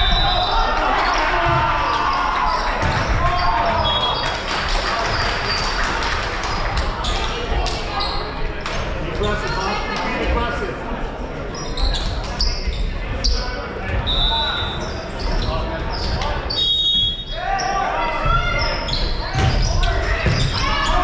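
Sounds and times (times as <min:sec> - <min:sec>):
many voices chattering and calling out: 0:00.0 - 0:21.0
volleyballs hit and bouncing on floor: 0:01.4 - 0:03.8.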